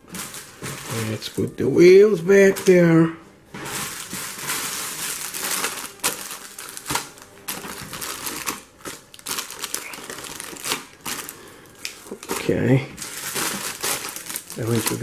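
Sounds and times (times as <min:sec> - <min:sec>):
plastic bags crinkling: 0:00.0 - 0:15.0.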